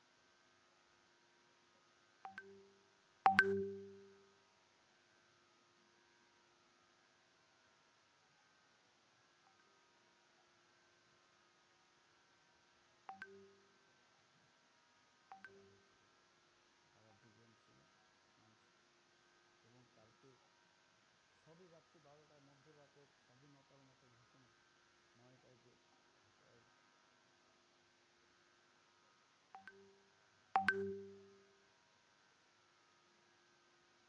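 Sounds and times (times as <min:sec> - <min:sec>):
short electronic beeps: 0:03.3 - 0:04.2, 0:30.6 - 0:31.4.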